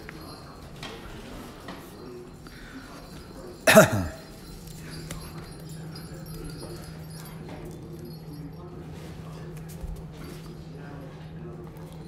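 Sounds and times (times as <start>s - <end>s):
person coughing: 3.6s - 4.3s.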